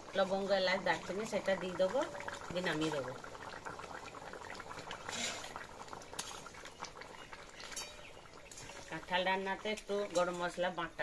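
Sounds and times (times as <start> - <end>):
gravy bubbling in a wok: 0.0 - 11.0
metal spatula scraping a pan: 5.0 - 6.6, 7.6 - 9.1.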